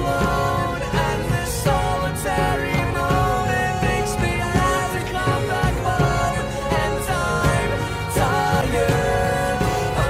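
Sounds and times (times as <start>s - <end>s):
pop-rock song: 0.0s - 10.0s.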